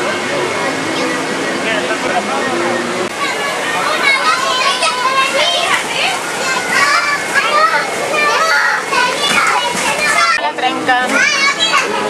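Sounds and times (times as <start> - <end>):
children shouting at play: 3.1 - 10.4, 11.0 - 12.0.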